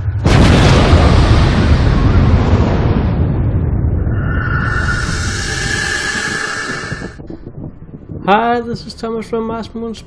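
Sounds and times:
hissing rush with whistle tone: 4.0s - 7.3s.

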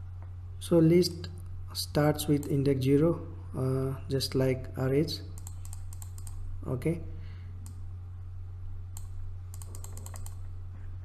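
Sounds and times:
low electrical hum: 0.0s - 11.0s
computer mouse clicking: 5.4s - 6.4s, 7.6s - 7.8s, 8.9s - 10.5s.

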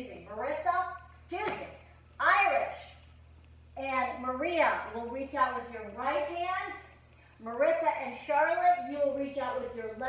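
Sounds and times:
woman speaking: 0.0s - 3.0s, 3.8s - 10.0s.

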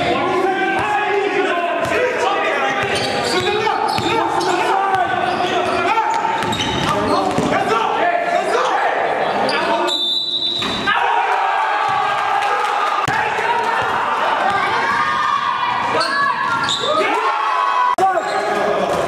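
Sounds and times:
players' voices in a hall: 0.0s - 19.0s.

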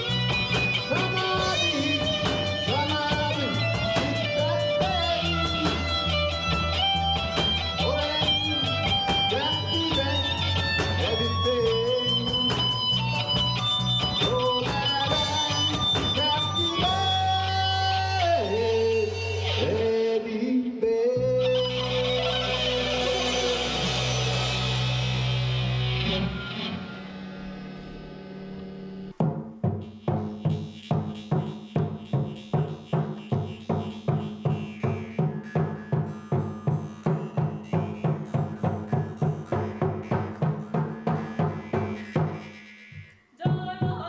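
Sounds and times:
standing drum steady beat: 0.0s - 18.0s, 22.6s - 26.0s, 29.1s - 42.6s
rock band playing: 0.0s - 20.0s, 21.2s - 29.2s, 30.0s - 42.6s.

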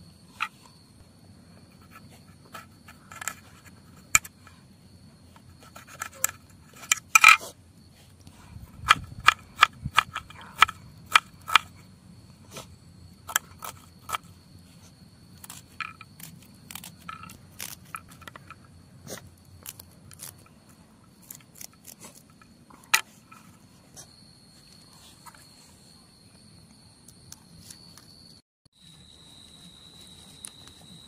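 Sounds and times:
high insect call: 0.0s - 31.0s.

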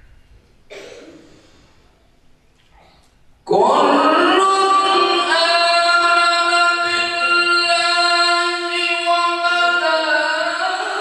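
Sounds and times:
man reciting melodically: 3.4s - 11.0s.

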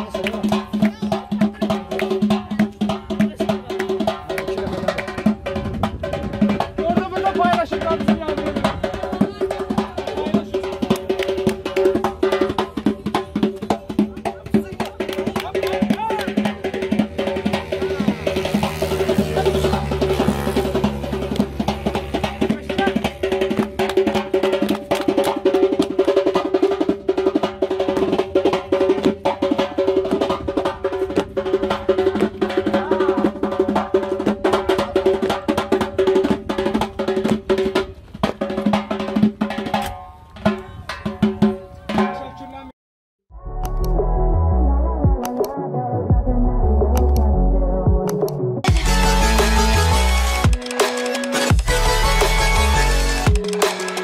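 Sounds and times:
frame drum beating fast: 0.0s - 42.3s, 50.4s - 54.0s
low rumble: 43.3s - 45.2s, 46.0s - 48.0s.

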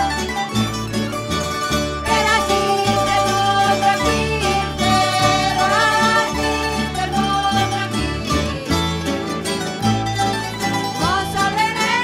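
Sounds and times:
plucked string band folk music: 0.0s - 12.0s.

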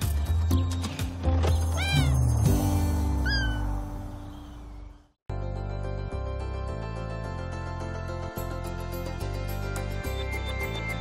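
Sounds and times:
kitten meowing: 1.8s - 2.2s, 3.2s - 3.7s.

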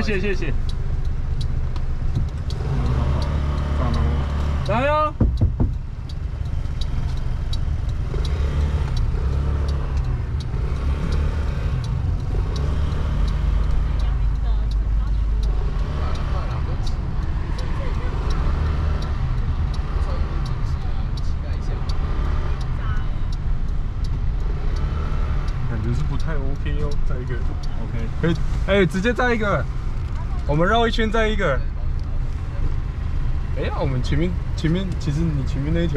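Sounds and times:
car road rumble inside cabin: 0.0s - 35.9s.

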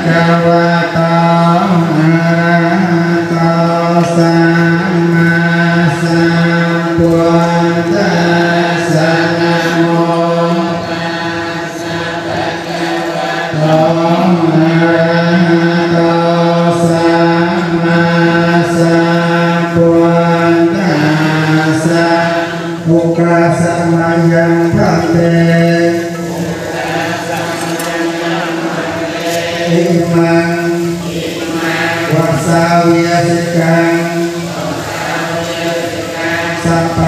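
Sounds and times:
group chanting in unison: 0.0s - 37.0s.

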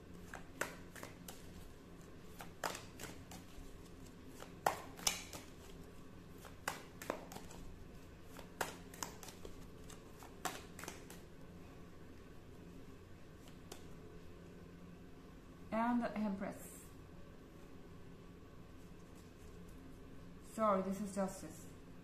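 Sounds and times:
cards clicking and tapping: 0.2s - 11.3s, 13.4s - 13.9s.

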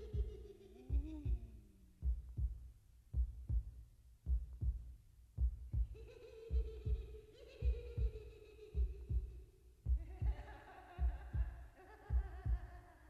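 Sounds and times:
heartbeat thumps: 0.0s - 13.0s.

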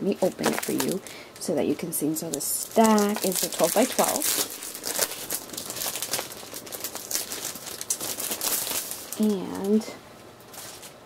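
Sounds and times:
packaging crinkling: 0.2s - 1.2s, 2.0s - 11.0s.

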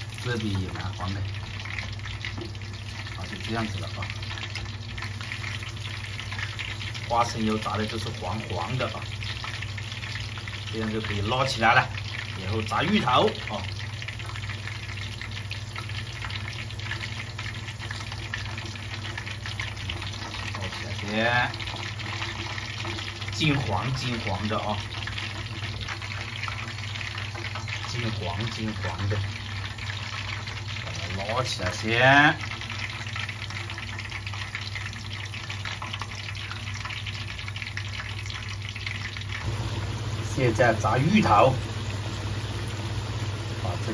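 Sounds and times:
oil bubbling and crackling: 0.0s - 43.9s.

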